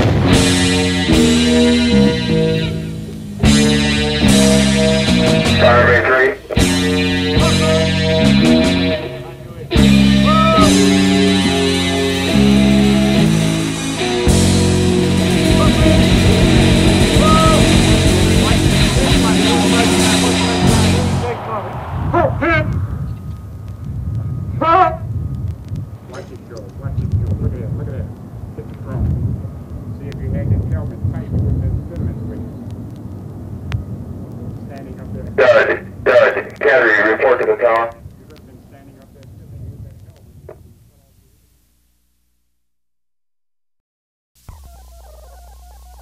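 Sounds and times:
steady low drone: 0.0s - 26.1s
voices: 5.4s - 11.0s, 15.0s - 23.4s, 24.5s - 25.1s, 26.0s - 29.1s, 29.9s - 32.8s, 34.3s - 40.3s
loud shouted voice: 10.2s - 10.8s, 17.1s - 17.8s
low rumble: 14.3s - 35.2s.

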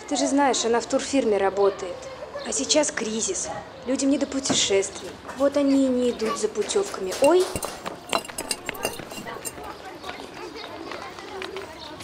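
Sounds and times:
quiet background voices: 5.7s - 12.0s.

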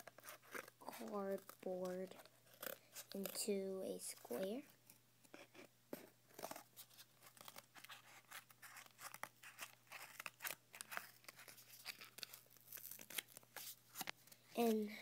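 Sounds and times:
scissors cutting cardboard: 0.0s - 3.5s, 6.3s - 13.4s.

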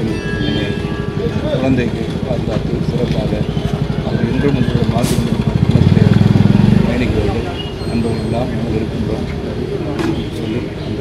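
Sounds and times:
man speaking: 0.0s - 11.0s
vehicle engine running: 0.6s - 10.9s.

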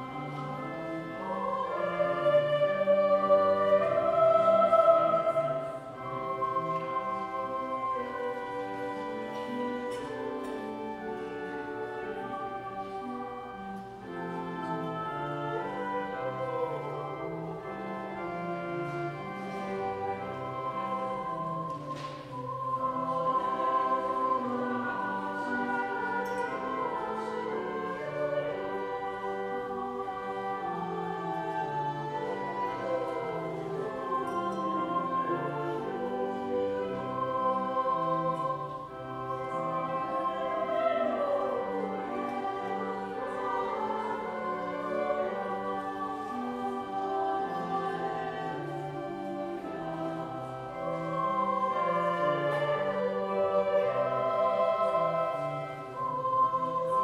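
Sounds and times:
church choir singing: 0.0s - 57.0s
organ: 0.0s - 57.0s.

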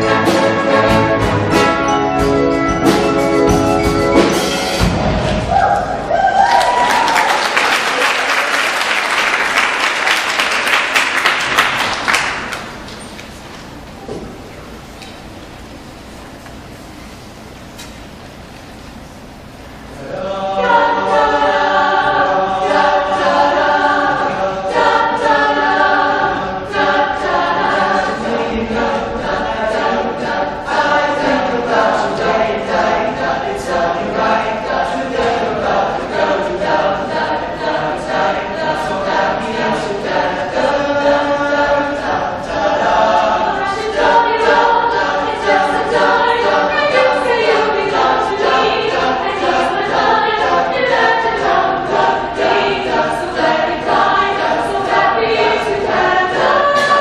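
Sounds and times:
steady rhythmic pulse: 0.0s - 6.1s, 7.4s - 57.0s
choir of young voices singing: 0.0s - 12.8s, 20.0s - 57.0s.

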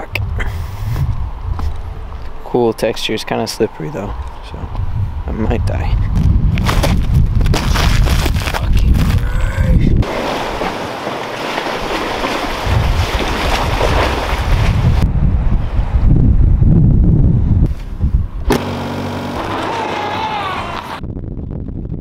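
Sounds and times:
wind buffeting microphone: 0.0s - 10.7s, 11.6s - 18.5s, 20.9s - 22.0s
car engine running: 18.5s - 21.0s.

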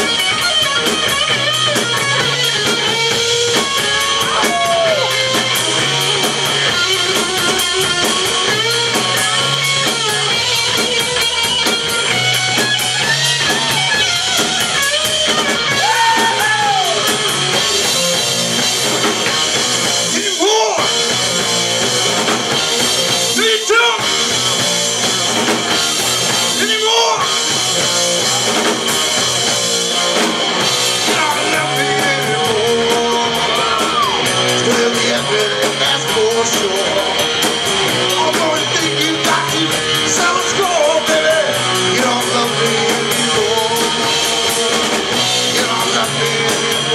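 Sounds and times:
bass guitar: 0.0s - 46.9s
distorted electric guitar: 0.0s - 46.9s
drum kit: 0.0s - 46.9s.

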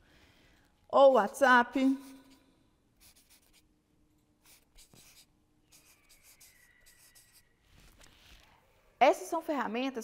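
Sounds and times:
marker pen scratching on paper: 0.9s - 3.7s, 4.4s - 8.5s.

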